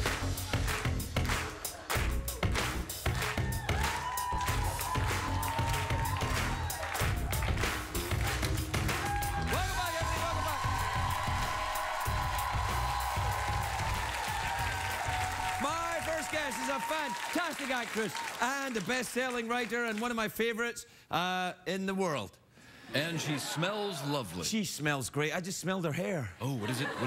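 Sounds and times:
audience applause: 0.0s - 20.2s.

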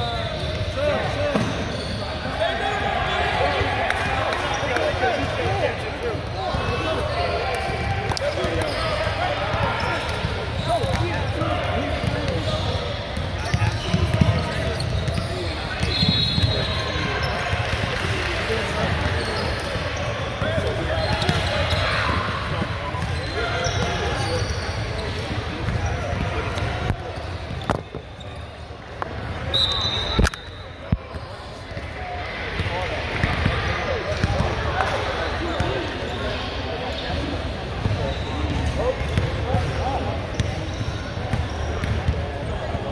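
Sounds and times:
chatter of many voices: 0.0s - 42.9s.

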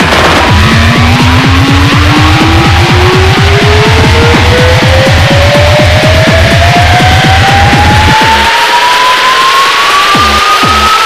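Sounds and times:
pounding kick drum: 0.0s - 8.5s
rising tone: 0.0s - 11.0s.

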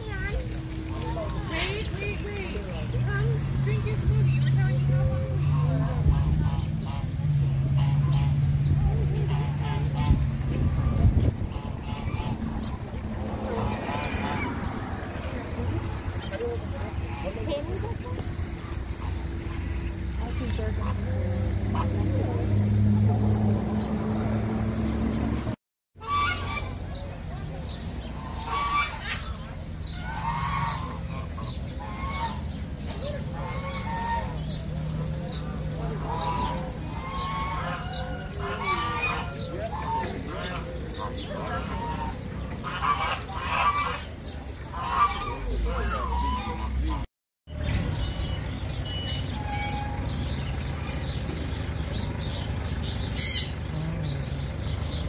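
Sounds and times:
geese honking: 0.0s - 22.8s, 26.0s - 27.0s, 28.0s - 47.1s, 48.3s - 54.9s
loud bird squawk: 26.0s - 26.8s, 53.1s - 53.8s.

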